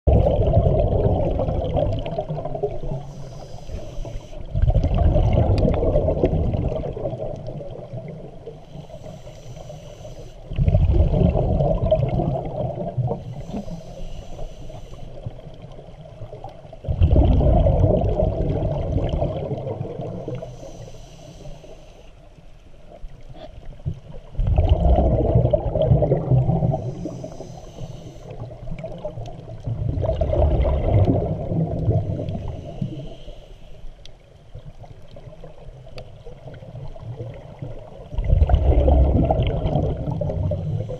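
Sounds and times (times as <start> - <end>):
underwater exhalation bubbling: 0.0 - 3.4, 4.4 - 8.6, 10.5 - 13.6, 16.3 - 20.5, 23.4 - 27.4, 28.2 - 33.0, 36.2 - 40.9
regulator inhalation hiss: 2.9 - 4.5, 8.6 - 10.5, 13.2 - 15.3, 20.4 - 22.2, 26.7 - 28.6, 32.1 - 33.9.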